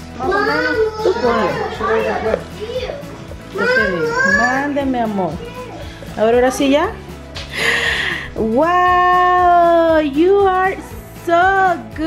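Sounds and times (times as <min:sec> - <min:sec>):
children's voices: 0:00.2 - 0:04.6, 0:05.4 - 0:06.0.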